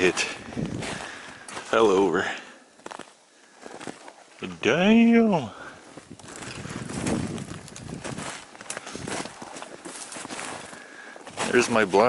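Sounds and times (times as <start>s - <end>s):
footsteps in snow: 0.0s - 4.5s, 5.7s - 12.0s.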